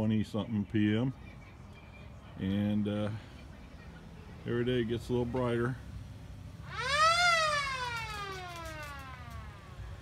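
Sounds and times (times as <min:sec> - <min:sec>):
siren wailing: 0:06.6 - 0:09.8.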